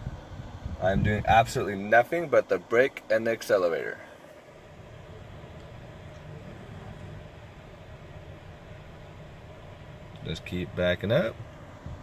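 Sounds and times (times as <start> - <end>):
faint steady tone: 0.0 - 12.0
low rumble and hiss in car cabin: 0.0 - 12.0.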